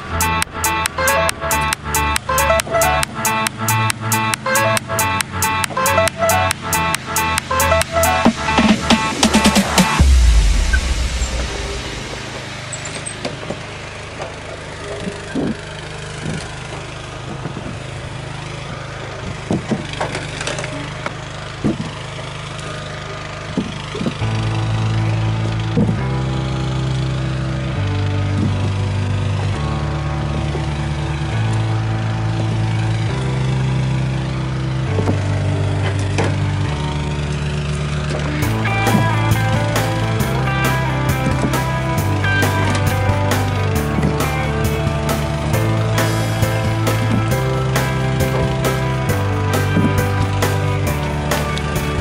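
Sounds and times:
music with bass line: 0:00.0 - 0:13.1, 0:24.2 - 0:52.0
log splitter humming: 0:00.0 - 0:52.0.

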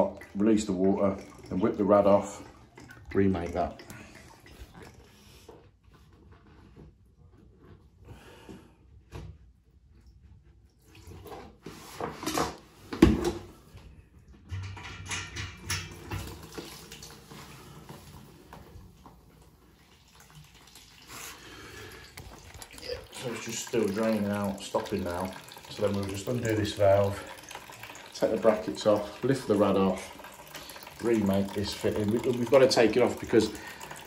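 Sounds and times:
water trickling into plastic bowl: 0:00.0 - 0:05.6, 0:14.2 - 0:34.0.

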